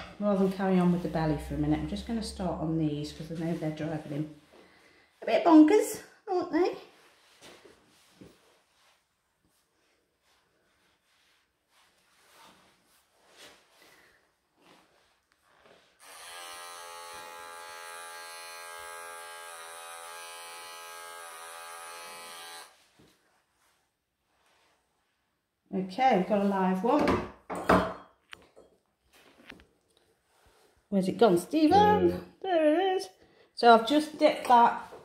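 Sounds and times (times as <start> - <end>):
electric clippers buzzing: 16.0 - 22.8.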